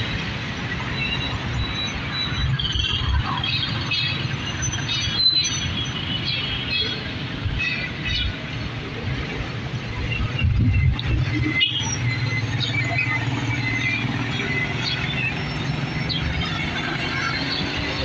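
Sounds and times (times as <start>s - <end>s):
traffic engine and tyre rumble: 0.0s - 18.0s.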